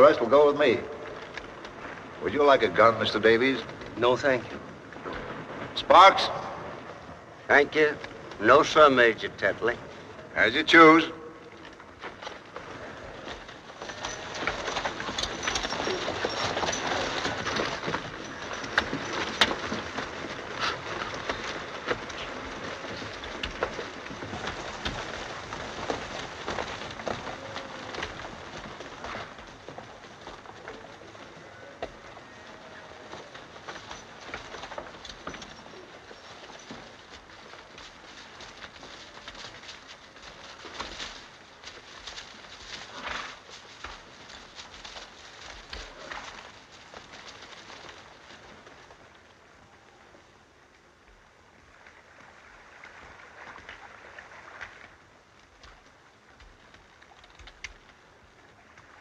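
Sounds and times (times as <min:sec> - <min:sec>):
hoof clicks and knocks: 0:00.0 - 0:52.0, 0:54.5 - 0:59.0
horses rustling through brush: 0:00.0 - 0:59.0.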